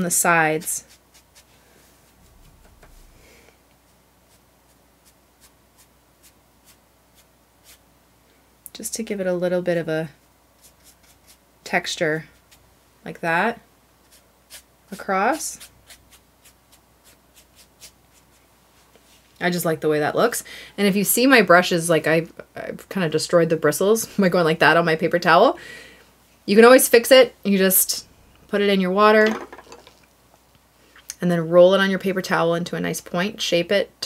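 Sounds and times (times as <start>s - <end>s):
brush scratching on paper: 0.6s - 3.2s, 3.8s - 7.8s, 10.6s - 11.4s, 15.5s - 19.2s.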